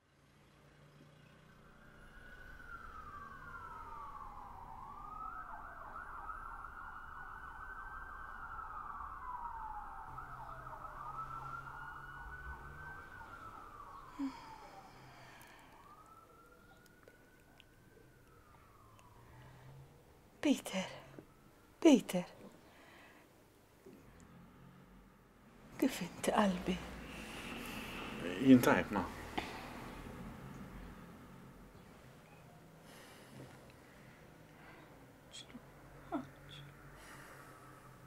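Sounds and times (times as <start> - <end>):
emergency siren wailing: 0.4 - 38.0.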